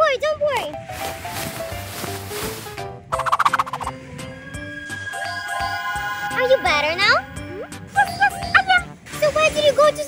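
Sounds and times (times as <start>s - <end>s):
children's background music: 0.0s - 10.0s
fast rattling warble: 3.1s - 4.0s.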